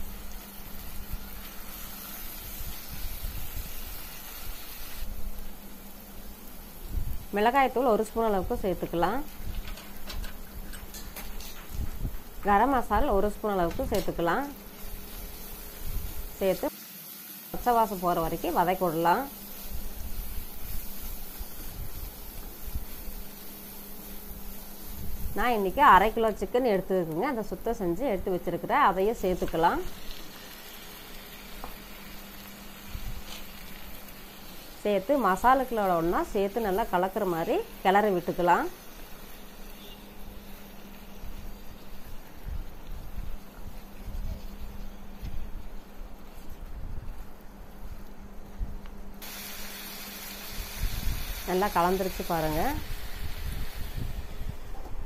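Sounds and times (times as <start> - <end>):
onions frying in a pan: 0.0 - 45.0, 49.2 - 54.6.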